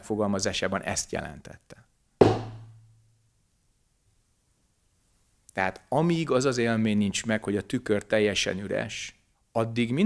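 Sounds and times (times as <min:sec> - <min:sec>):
wooden stick knock with low ring: 0:02.2 - 0:03.0.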